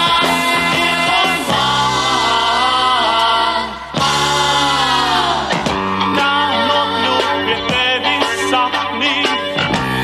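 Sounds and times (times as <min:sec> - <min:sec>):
pop song with vocal harmony: 0:00.0 - 0:10.0.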